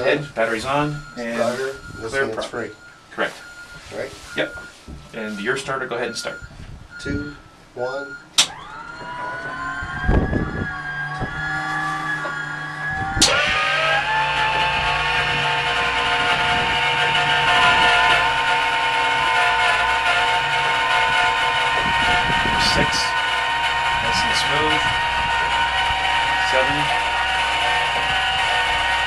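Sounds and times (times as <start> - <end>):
engine starter whine: 0.0 - 29.0.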